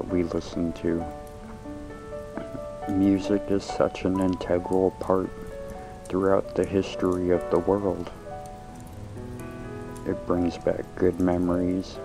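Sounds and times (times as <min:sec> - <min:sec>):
soft piano notes: 0:00.0 - 0:12.0.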